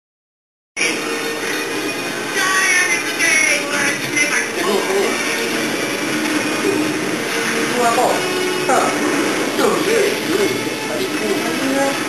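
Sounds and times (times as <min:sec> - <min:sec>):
music with singing voice: 0:00.8 - 0:12.0.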